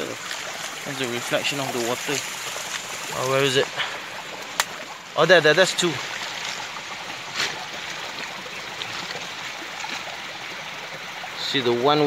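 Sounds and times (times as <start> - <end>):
creek water flowing over stones: 0.0 - 12.0.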